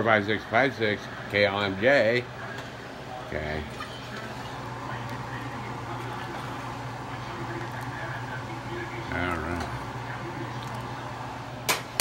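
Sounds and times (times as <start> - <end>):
pot of water boiling: 0.0 - 12.0.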